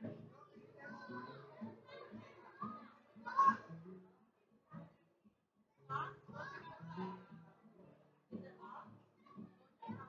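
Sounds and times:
young children chattering: 0:00.0 - 0:03.8, 0:05.8 - 0:10.0.

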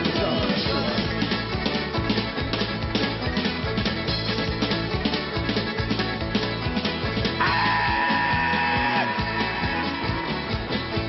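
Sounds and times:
accordion: 0:00.0 - 0:11.0
folk-punk band playing live: 0:00.0 - 0:11.0.

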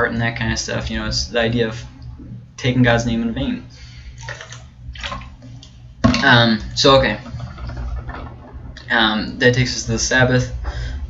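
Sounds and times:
person gulping liquid: 0:04.2 - 0:06.2.

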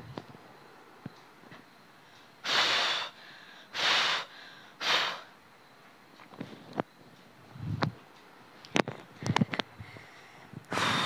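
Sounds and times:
woman breathing hard: 0:02.0 - 0:05.4, 0:09.2 - 0:11.0.

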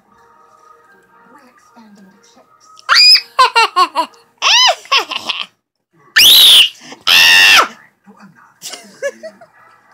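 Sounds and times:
girl squealing: 0:02.9 - 0:03.3.

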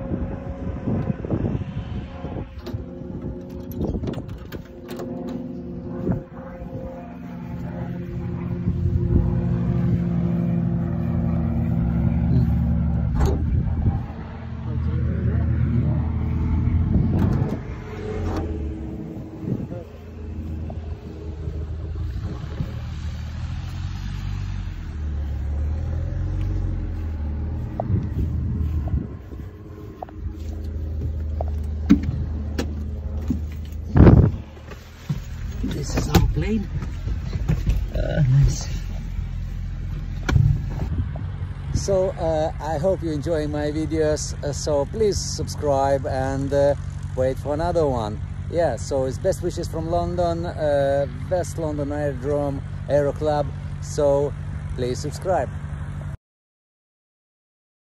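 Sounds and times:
light aircraft piston engine: 0:00.0 - 0:56.2.

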